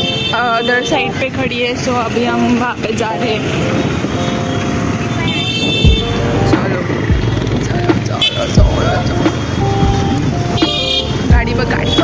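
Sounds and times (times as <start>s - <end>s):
background music: 0.0s - 12.0s
motorbike engine and road rumble: 0.0s - 12.0s
wind noise: 0.9s - 12.0s.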